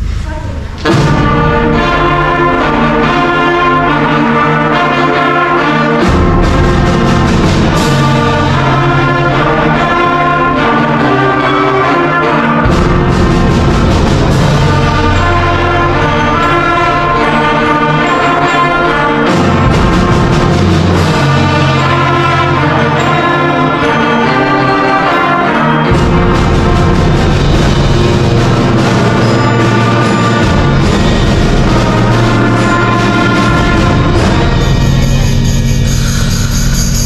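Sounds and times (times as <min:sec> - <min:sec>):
concert band playing: 0:00.0 - 0:37.0
sharp percussive hits: 0:25.8 - 0:37.0.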